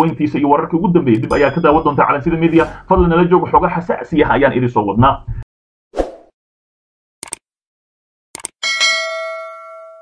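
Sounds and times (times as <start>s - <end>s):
bell chime: 1.3s - 2.4s, 8.6s - 10.0s.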